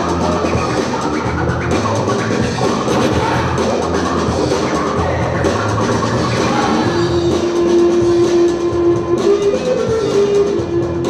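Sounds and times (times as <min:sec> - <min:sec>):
hip hop break music: 0:00.0 - 0:11.0
turntable scratching: 0:00.1 - 0:07.0.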